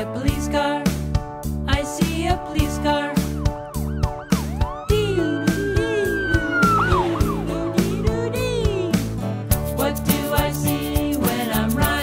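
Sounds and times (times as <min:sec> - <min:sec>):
police siren wavering: 0:03.3 - 0:07.8
children's song with steady beat: 0:04.5 - 0:12.0.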